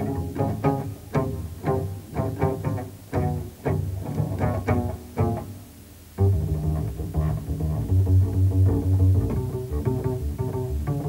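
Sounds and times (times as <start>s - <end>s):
double bass plucked: 0.0s - 11.0s.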